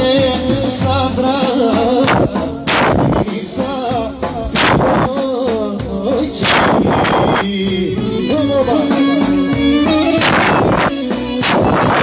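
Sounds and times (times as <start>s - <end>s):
heavy percussive hits: 0.0s - 12.0s
live folk band music: 0.0s - 12.0s.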